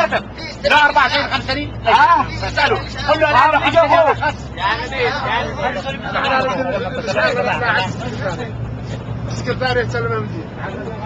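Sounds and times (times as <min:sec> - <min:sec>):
bus engine drone: 0:00.0 - 0:11.0
men talking heatedly: 0:00.0 - 0:11.0.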